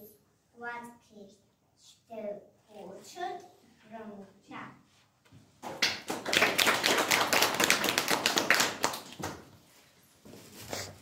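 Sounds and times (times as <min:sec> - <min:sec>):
audience clapping: 0:05.6 - 0:09.5.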